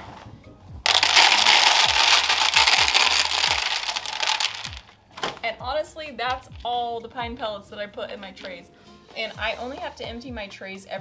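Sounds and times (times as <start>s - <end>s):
pellets pouring into plastic tray: 0.9s - 4.8s.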